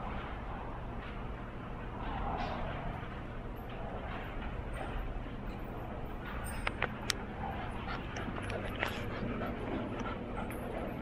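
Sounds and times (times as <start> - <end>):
steady low background noise: 0.0 - 11.0.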